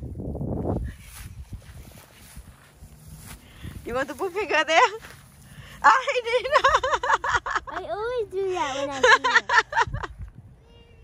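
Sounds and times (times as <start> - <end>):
wind rumbling on microphone: 0.0 - 4.4, 9.6 - 11.0.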